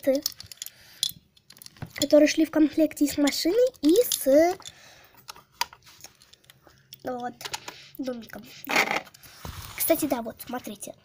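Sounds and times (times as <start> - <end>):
plastic toys clicking and tapping: 0.0 - 9.2.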